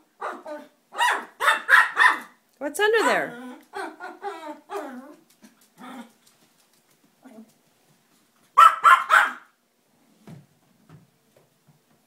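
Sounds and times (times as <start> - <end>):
puppy whining and growling: 0.1 - 1.2, 3.1 - 6.2
puppy sharp barks: 0.2 - 2.4, 8.6 - 9.6.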